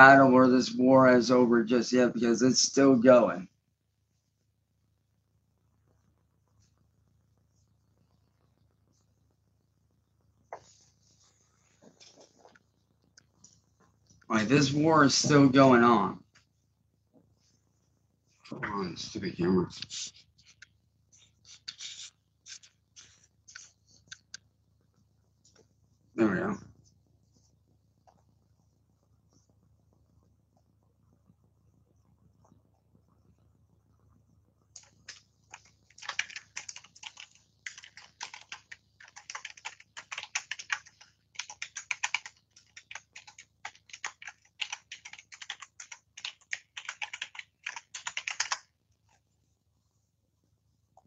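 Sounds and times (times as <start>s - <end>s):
fingers rubbing on phone: 19.9s - 24.2s
computer keyboard key clicks: 35.9s - 48.6s.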